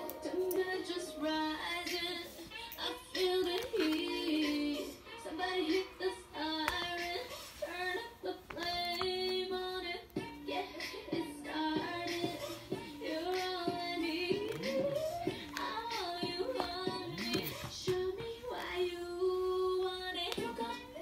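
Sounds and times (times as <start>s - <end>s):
song with high sung voice: 0.0s - 21.0s.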